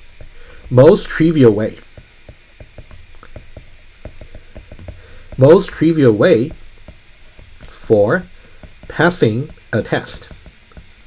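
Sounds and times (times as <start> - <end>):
stylus ticking on glass screen: 0.2 - 11.0.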